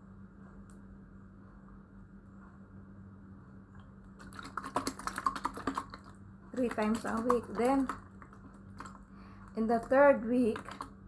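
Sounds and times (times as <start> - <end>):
plastic bottle crinkling: 4.2 - 9.0, 10.5 - 10.9.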